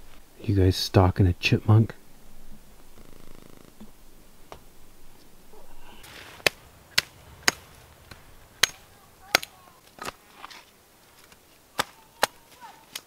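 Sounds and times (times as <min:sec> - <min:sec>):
hatchet chopping branches: 0:06.0 - 0:10.6, 0:11.2 - 0:13.0.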